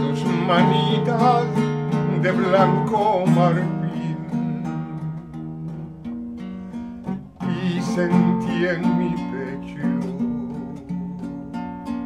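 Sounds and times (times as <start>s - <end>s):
classical guitar strummed chords: 0.0s - 12.0s.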